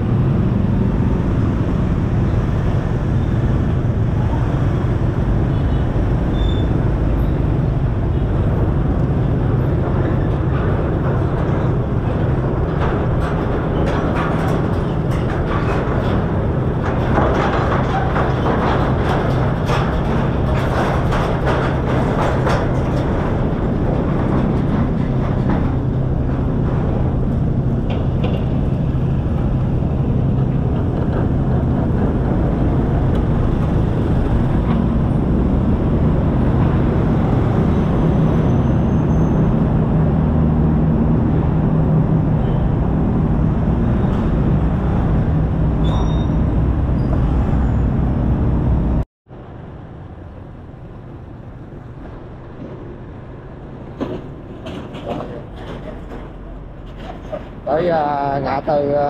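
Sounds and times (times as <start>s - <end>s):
wheels rattling over steel grating: 3.5s - 47.8s, 52.9s - 59.0s.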